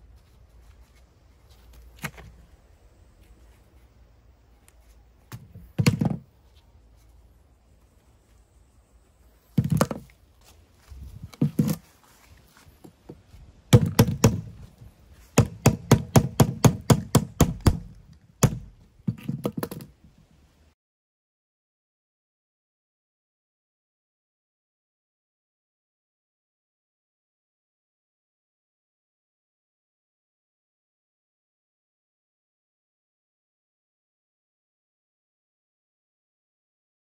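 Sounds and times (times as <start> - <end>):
hammer knocking on wood: 13.7 - 14.6, 15.4 - 19.8.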